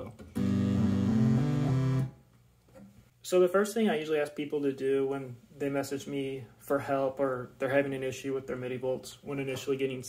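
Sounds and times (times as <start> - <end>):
analog synthesizer notes: 0.0 - 2.2.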